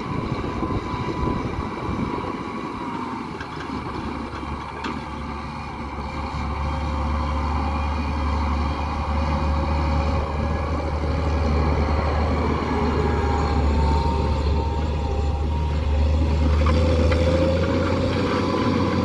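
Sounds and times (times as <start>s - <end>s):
tractor diesel engine under load: 0.0s - 19.0s.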